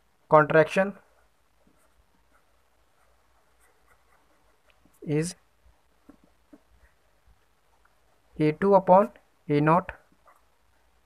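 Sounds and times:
pen scratching on paper: 1.1s - 5.1s.

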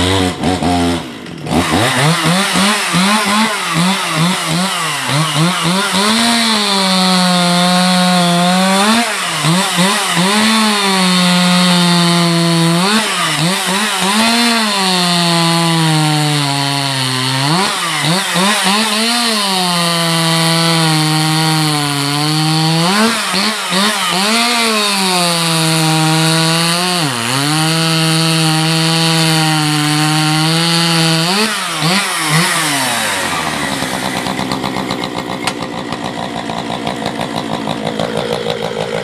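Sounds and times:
chainsaw cutting log: 0.0s - 39.0s.

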